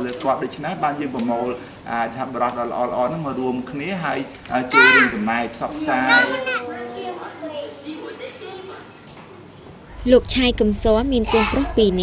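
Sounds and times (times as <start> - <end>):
child talking: 4.7 - 9.1, 10.8 - 12.0.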